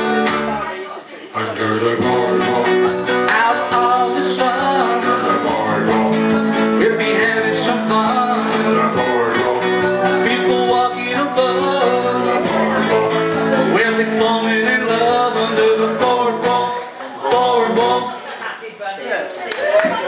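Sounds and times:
bass guitar line: 0:00.0 - 0:00.7, 0:01.4 - 0:18.2
acoustic guitars strummed: 0:00.0 - 0:18.3.

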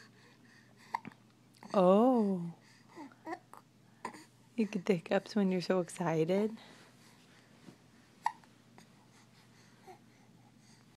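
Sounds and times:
faint little baby sounds: 0:00.8 - 0:04.3
baby hiccuping: 0:08.2 - 0:08.5.

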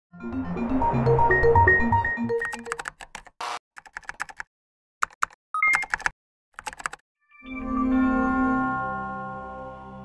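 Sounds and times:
keyboard typing clicks: 0:02.3 - 0:07.0.

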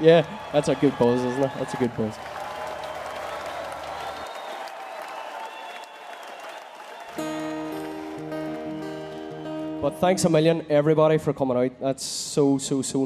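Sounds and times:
crowd applause: 0:00.0 - 0:09.8
held musical chord: 0:07.2 - 0:10.8.

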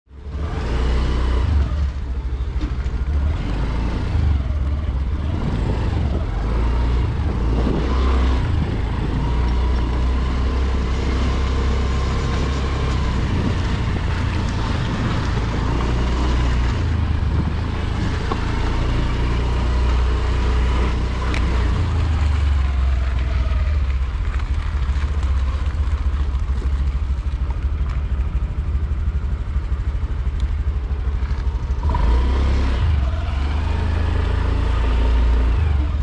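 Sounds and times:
motor scooter engine rumble: 0:00.2 - 0:36.0.

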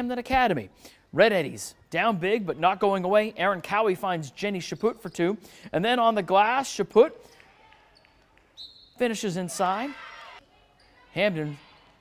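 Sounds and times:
sneaker squeak: 0:04.3 - 0:05.4, 0:07.3 - 0:09.6, 0:10.4 - 0:12.0.

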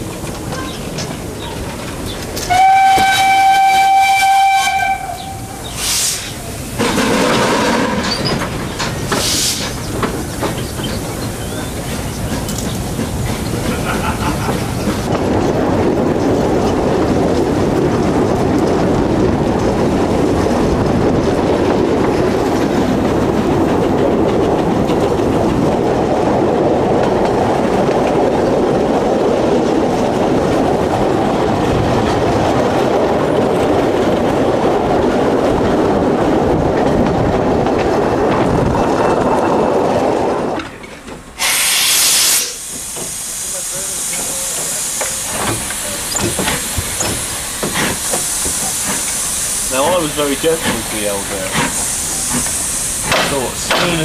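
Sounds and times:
steam locomotive hissing: 0:00.0 - 0:26.7, 0:41.3 - 0:54.0
train wheels rumbling on rail: 0:00.0 - 0:54.0
short loud hiss: 0:41.4 - 0:44.0.

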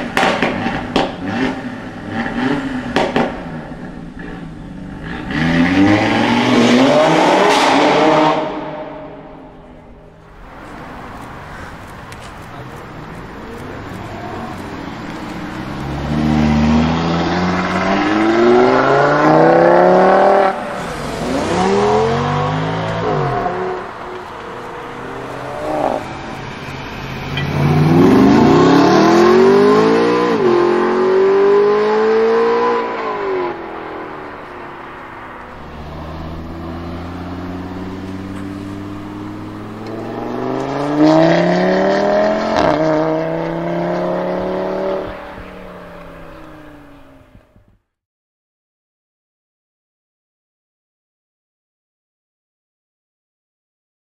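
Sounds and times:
car engines accelerating hard: 0:00.0 - 0:47.7.

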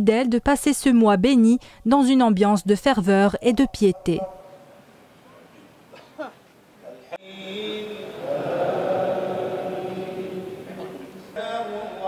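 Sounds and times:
man chanting recitation: 0:06.8 - 0:12.0.

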